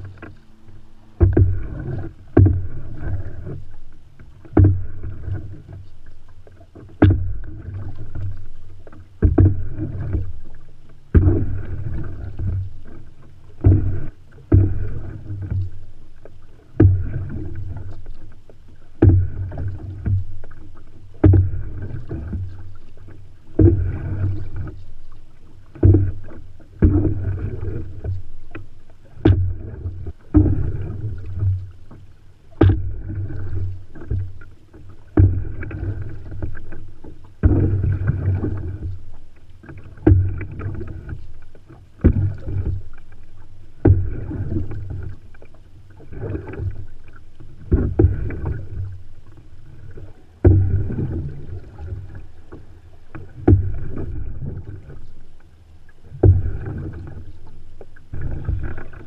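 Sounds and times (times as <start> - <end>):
canoe paddle strokes: 0.0 - 59.0
water swirling along hull: 0.0 - 59.0.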